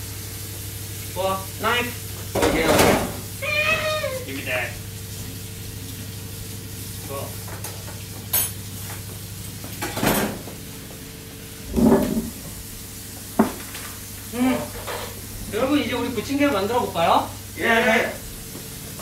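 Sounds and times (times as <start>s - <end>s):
food sizzling in frying pan: 0.0s - 19.0s
utensils and pans clattering: 2.3s - 3.2s, 7.4s - 9.0s, 9.6s - 10.5s, 14.6s - 15.2s.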